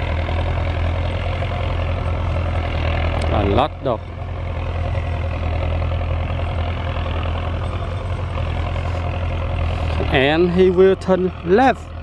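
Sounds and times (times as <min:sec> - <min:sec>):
tractor diesel engine drone: 0:00.0 - 0:12.0.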